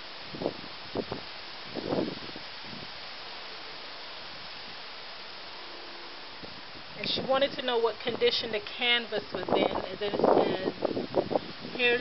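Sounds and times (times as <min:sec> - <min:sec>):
wind noise on microphone: 0:00.0 - 0:05.5, 0:06.2 - 0:12.0.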